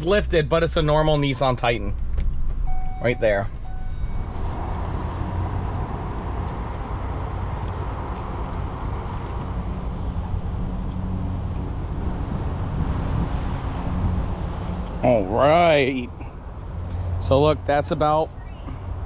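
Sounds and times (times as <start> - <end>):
van engine low rumble: 0.0 - 19.0.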